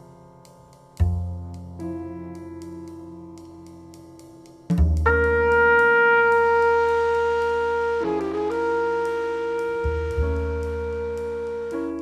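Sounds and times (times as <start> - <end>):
low sustained bass tone: 1.0 - 3.4, 4.8 - 12.0
long steady horn note: 5.1 - 12.0.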